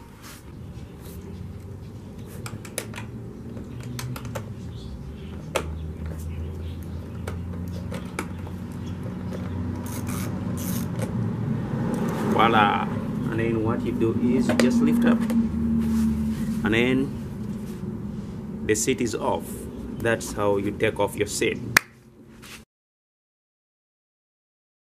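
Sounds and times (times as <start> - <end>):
low steady rumble: 9.8 - 21.8.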